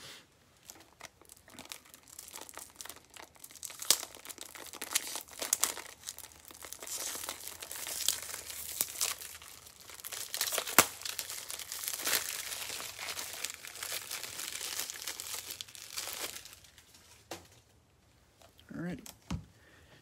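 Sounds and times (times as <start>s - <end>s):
plastic packaging crinkling: 0.6s - 17.7s.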